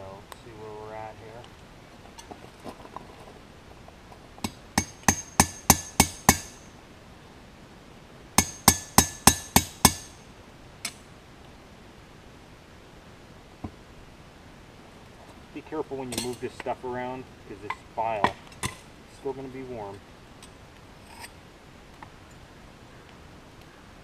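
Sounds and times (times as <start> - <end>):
hammer striking chisel on anvil: 4.5 - 6.6, 8.4 - 10.2.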